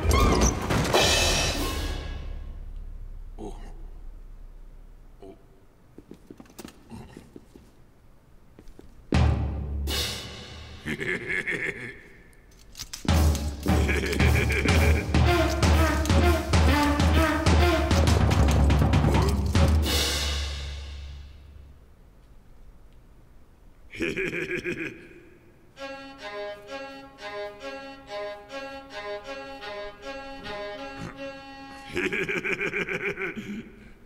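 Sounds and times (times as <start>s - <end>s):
pitched horn notes: 15.0s - 19.4s, 25.8s - 32.0s.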